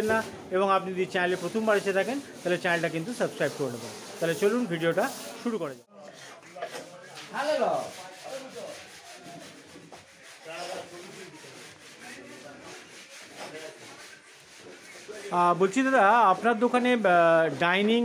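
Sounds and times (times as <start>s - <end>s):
steady rubbing scraping: 1.0s - 18.0s
faint indistinct voices: 3.7s - 17.4s.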